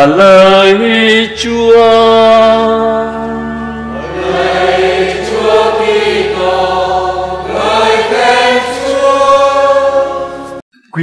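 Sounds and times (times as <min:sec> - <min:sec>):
choir and congregation singing: 0:01.9 - 0:10.6.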